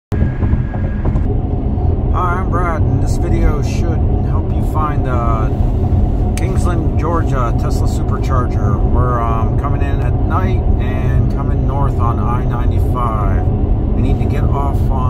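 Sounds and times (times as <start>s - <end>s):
road and tyre rumble: 0.1s - 15.0s
man talking: 2.2s - 5.6s, 6.4s - 15.0s.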